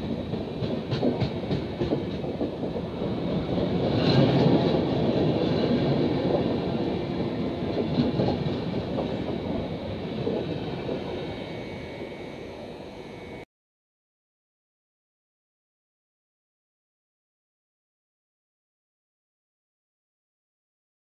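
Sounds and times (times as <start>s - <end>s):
wheels clicking over rail joints: 0.0s - 11.2s
train coaches rolling past: 0.0s - 13.4s.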